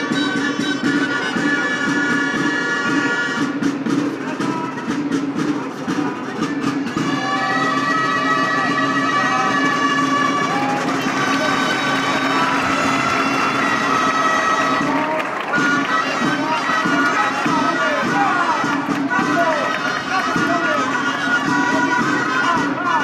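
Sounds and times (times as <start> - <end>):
crowd murmur and voices: 0.0 - 23.0
shawms playing a melody: 0.0 - 23.0.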